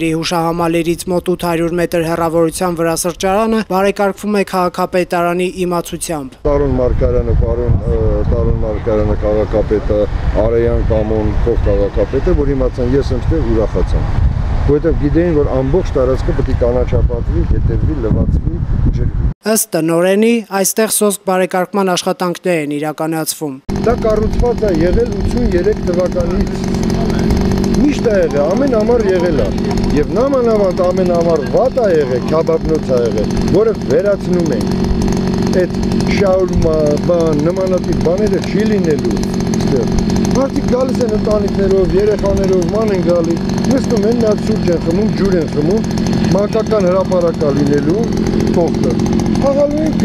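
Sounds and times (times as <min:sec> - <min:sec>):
person talking: 0:00.0 - 0:10.0, 0:19.4 - 0:34.7, 0:35.5 - 0:50.0
low steady rumble: 0:06.5 - 0:19.4.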